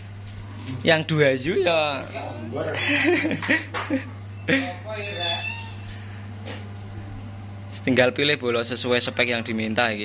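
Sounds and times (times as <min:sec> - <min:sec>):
steady low hum: 0:00.0 - 0:10.0
cat meowing: 0:05.0 - 0:05.9.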